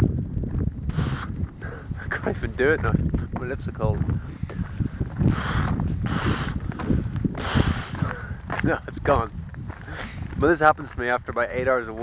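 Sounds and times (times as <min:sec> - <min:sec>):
wind rumble on microphone: 0:00.0 - 0:12.0
man exhaling through lips: 0:00.9 - 0:01.9, 0:07.4 - 0:08.4.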